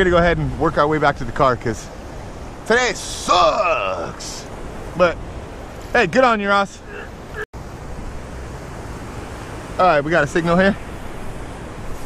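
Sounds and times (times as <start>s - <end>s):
shallow surf washing: 0.0s - 7.4s.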